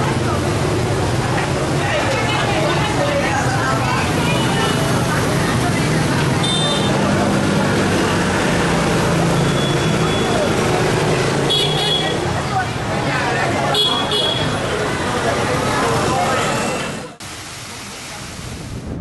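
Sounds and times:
street traffic engine hum: 0.0 - 19.0.

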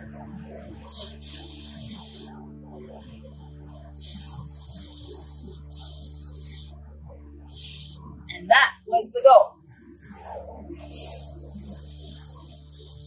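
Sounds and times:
hose nozzle spraying water: 0.8 - 2.3, 4.0 - 6.7, 7.5 - 8.0, 9.8 - 13.0.

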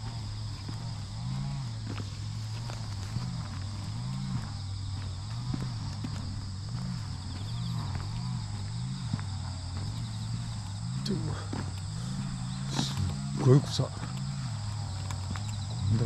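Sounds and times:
footsteps on asphalt: 0.0 - 16.0
insects chirring: 0.0 - 16.0
low pulsing hum: 0.0 - 16.0.

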